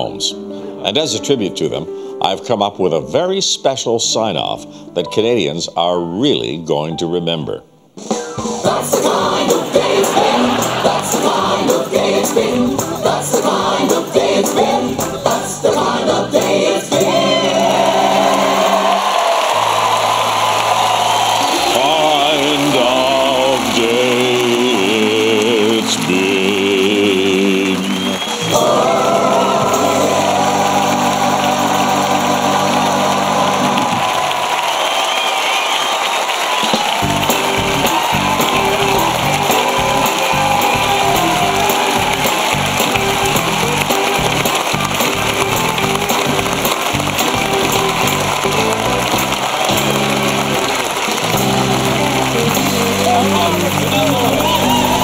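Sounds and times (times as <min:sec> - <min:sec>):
upbeat music with steady beat: 0:08.0 - 0:19.2, 0:36.6 - 0:55.0
gospel choir singing: 0:08.6 - 0:34.3.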